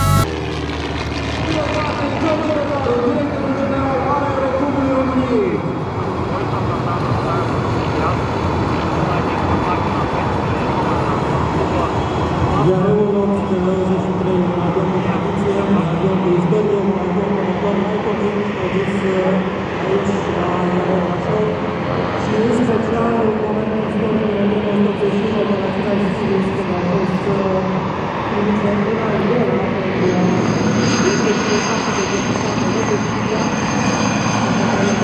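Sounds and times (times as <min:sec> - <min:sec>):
propeller plane engine drone: 0:00.0 - 0:35.0.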